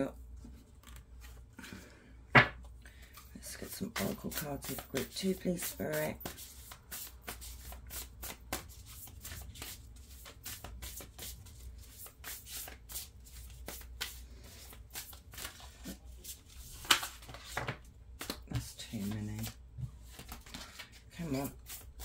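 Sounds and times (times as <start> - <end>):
cards being shuffled: 0.4 - 1.5, 3.6 - 22.0.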